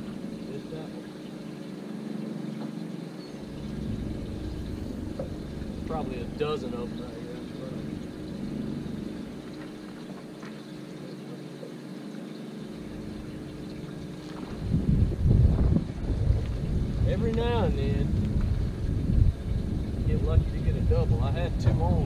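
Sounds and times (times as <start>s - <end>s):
steady low hum: 0.0s - 22.0s
wind buffeting microphone: 3.4s - 10.4s, 12.8s - 22.0s.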